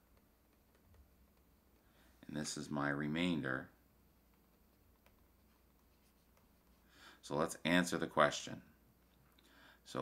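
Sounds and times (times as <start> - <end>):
stylus scratching on tablet screen: 4.2 - 6.8.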